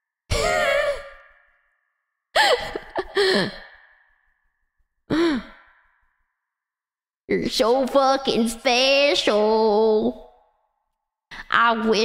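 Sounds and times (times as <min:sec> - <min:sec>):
woman's breathy sigh-like calls: 0:05.1 - 0:05.8.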